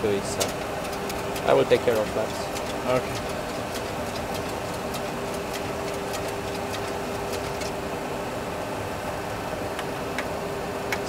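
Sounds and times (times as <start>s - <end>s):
cockpit rush with steady hum: 0.0s - 11.0s.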